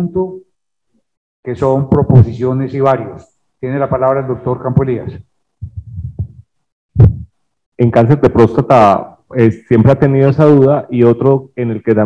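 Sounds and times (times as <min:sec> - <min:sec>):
person talking: 0:01.5 - 0:06.4, 0:07.8 - 0:12.0
muffled thumps on microphone: 0:04.8 - 0:07.4.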